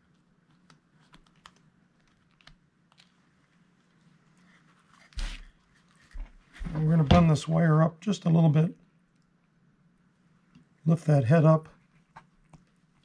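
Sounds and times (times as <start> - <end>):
small clicks and paper rustles: 0.0 - 6.6, 11.7 - 13.0.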